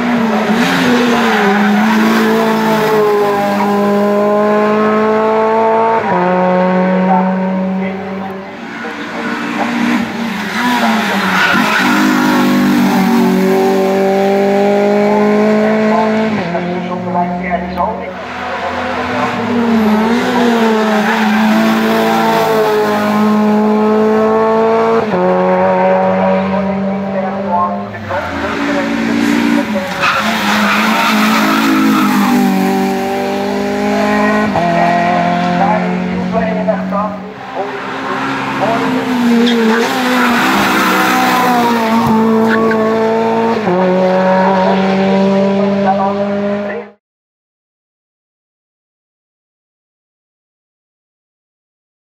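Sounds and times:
race car engines at high revs: 0.0 - 47.0.

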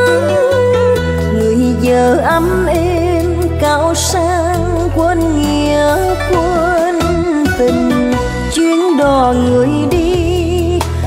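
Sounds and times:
band with steady bass line: 0.0 - 11.0.

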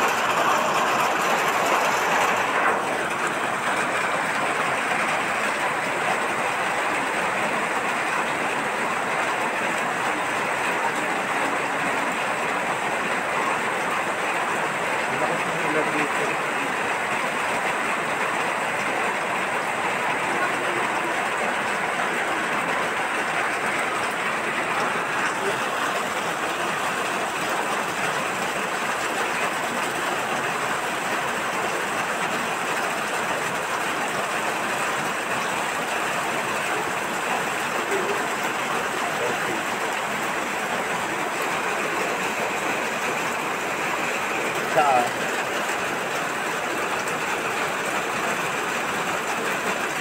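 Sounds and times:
heavy rain pouring: 0.0 - 50.0.

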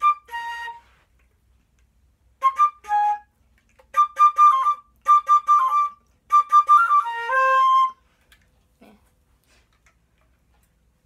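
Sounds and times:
flute handling clicks: 3.5 - 4.1.

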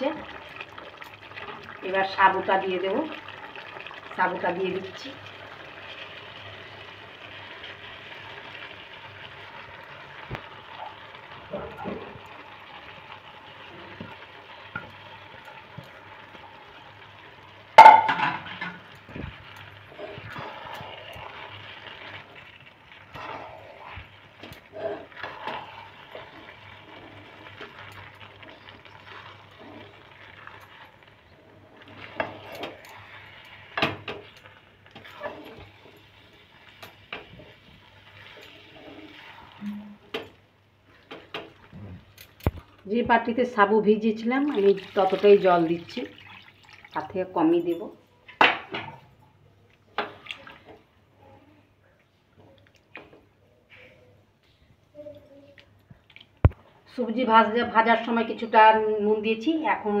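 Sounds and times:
spatula scraping a metal wok: 35.1 - 36.2.

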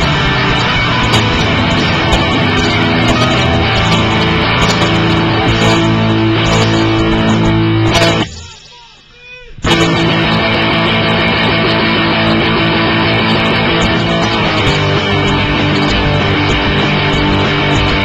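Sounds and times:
rock band playing: 0.0 - 8.8, 9.6 - 18.0.

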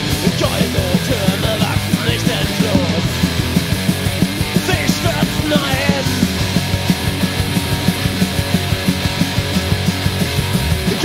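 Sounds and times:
electric guitar: 0.0 - 11.0
fast drum beat: 0.0 - 11.0.

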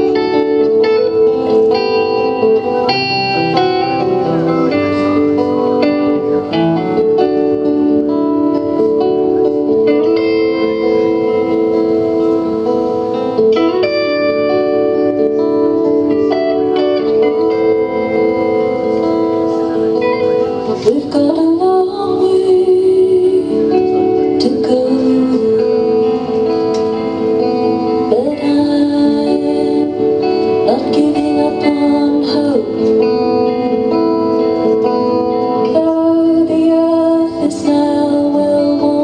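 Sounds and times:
acoustic and electric guitars playing: 0.0 - 39.0.

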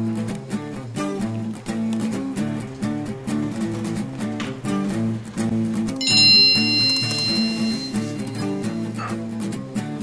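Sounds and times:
acoustic guitar music: 0.0 - 10.0
bright bell-like chime: 6.0 - 8.8.

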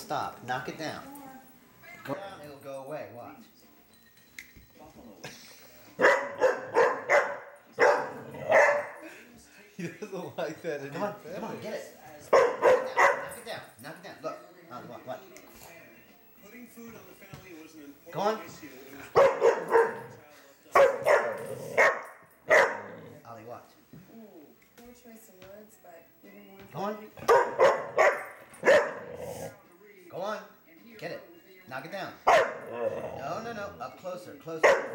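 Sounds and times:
dog barking: 6.0 - 9.0, 12.3 - 13.4, 19.1 - 23.0, 27.2 - 29.4, 32.2 - 32.9, 34.6 - 34.9.

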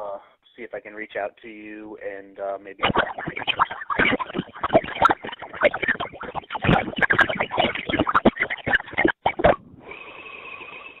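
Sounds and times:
garbled phone call audio: 2.1 - 9.6.

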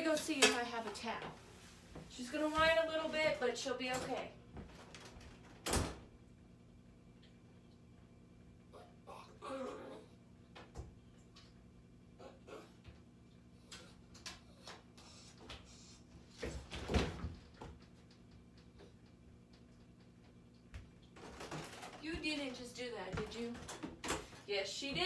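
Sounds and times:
puppy whimpering: 8.7 - 10.2.

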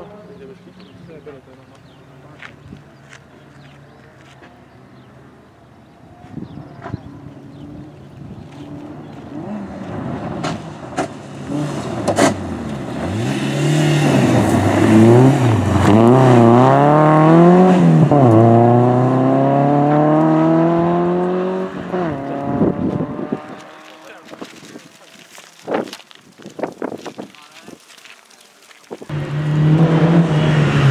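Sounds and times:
rally car engine revving: 8.6 - 25.0, 29.1 - 30.9.

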